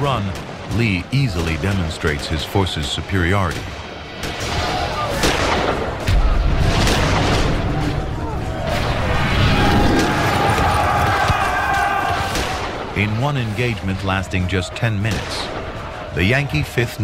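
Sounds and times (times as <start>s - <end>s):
musket shots: 3.5s - 8.0s
cannon boom: 3.6s - 11.3s.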